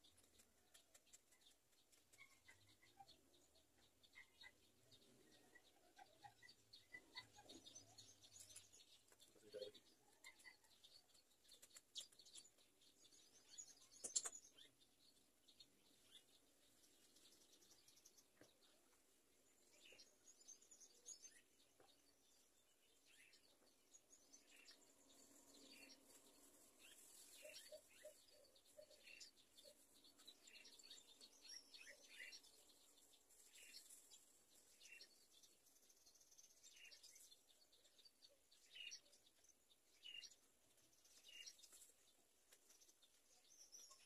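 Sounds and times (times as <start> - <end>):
faint bird chirps: 0.0 - 44.0
sharp click: 14.0 - 14.4.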